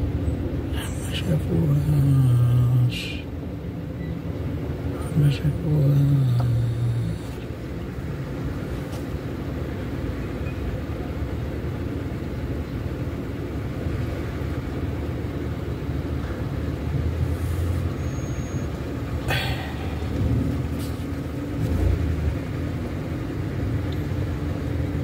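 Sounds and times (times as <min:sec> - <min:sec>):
vehicle engines idling: 0:00.0 - 0:25.0
vehicle passing: 0:18.8 - 0:23.8.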